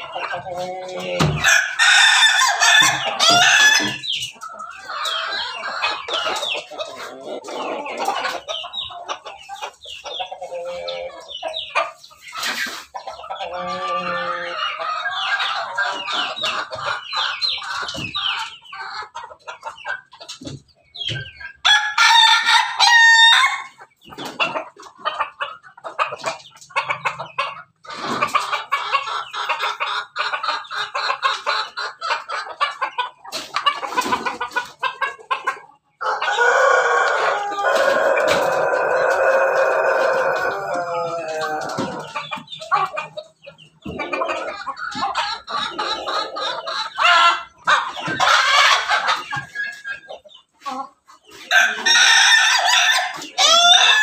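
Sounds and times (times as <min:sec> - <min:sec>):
chickens clucking: 0:00.0 - 0:54.0.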